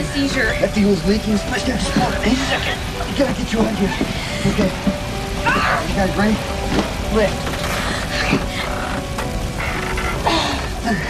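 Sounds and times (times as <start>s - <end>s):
rain hissing: 0.0s - 11.0s.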